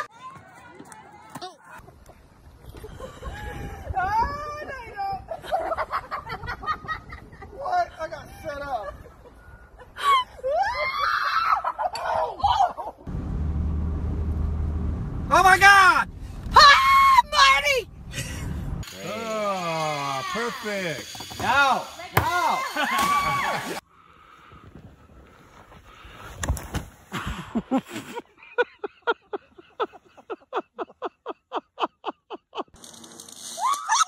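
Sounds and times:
people laughing and shrieking: 9.8s - 13.0s, 22.3s - 23.8s, 33.5s - 34.0s
high-pitched screams: 18.9s - 23.8s, 33.4s - 34.0s.

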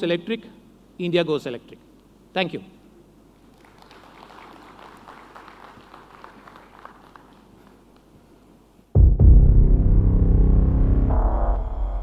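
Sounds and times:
faint scattered applause: 3.4s - 8.2s
deep bass-heavy music: 9.0s - 12.0s.

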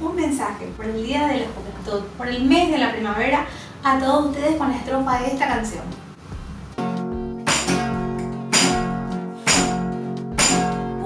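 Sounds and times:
acoustic guitar strumming chords: 6.7s - 11.0s.

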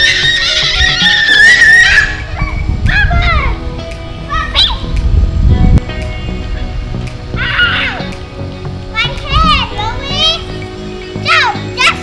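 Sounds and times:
child squealing: 0.0s - 3.6s, 7.4s - 8.1s
background music: 0.0s - 12.0s.

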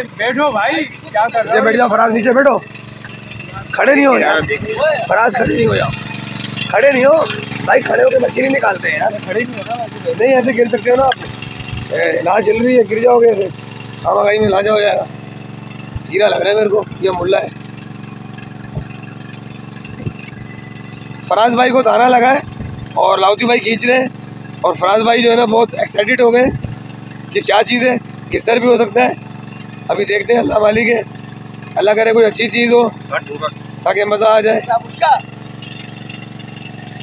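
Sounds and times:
boat engine idling: 0.0s - 37.0s.

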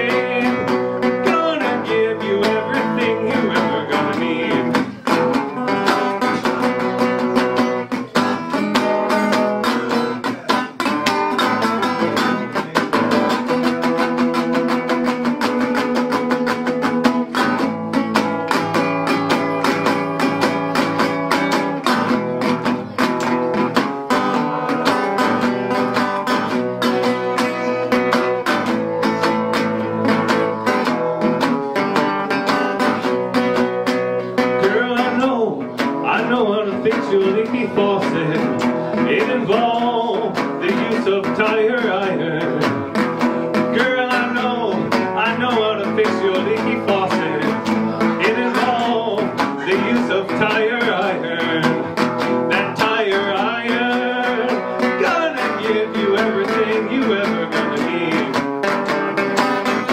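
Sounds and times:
resonator guitar blues playing: 0.0s - 59.9s.

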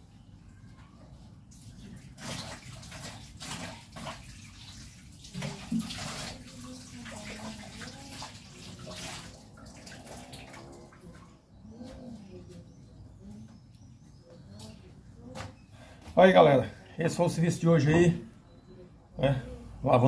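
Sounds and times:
tap water running into sink: 2.2s - 10.5s.

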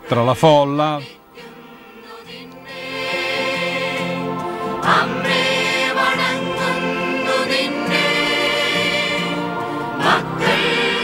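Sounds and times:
choir singing sustained notes: 0.0s - 11.0s.

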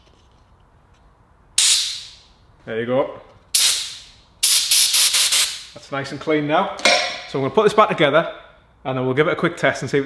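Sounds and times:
compressed air blast hissing: 1.6s - 2.2s, 3.5s - 5.8s.

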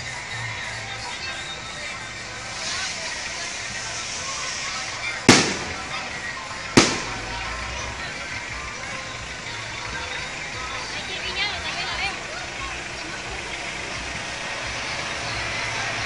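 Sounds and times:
crowd voices: 0.0s - 16.0s
music: 0.0s - 16.0s
loud firecracker bangs: 5.2s - 8.7s.

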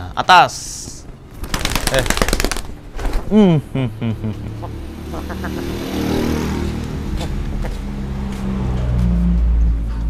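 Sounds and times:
pigeon wings flapping: 1.3s - 3.3s.

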